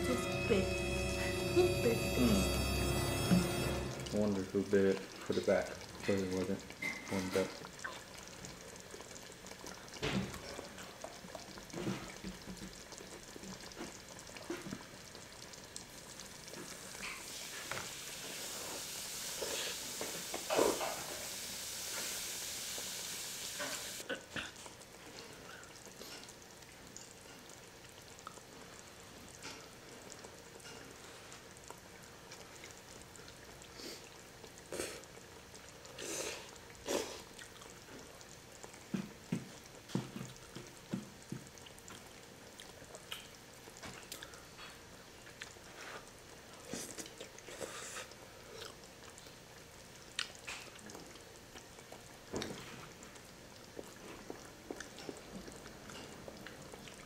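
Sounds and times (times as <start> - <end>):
food sizzling in a frying pan: 0.0 - 57.0
people slurping and chewing: 18.4 - 21.0, 33.6 - 49.3, 50.2 - 57.0.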